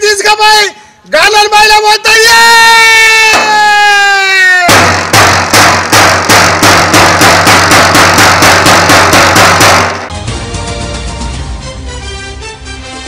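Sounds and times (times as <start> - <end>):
man's long shouted call: 1.3 - 4.8.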